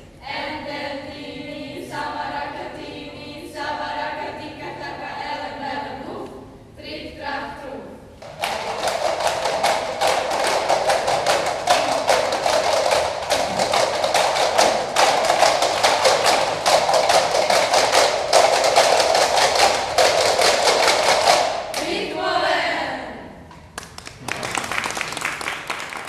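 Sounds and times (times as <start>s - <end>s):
plastic cups and bowls clacking: 8.2s - 21.6s.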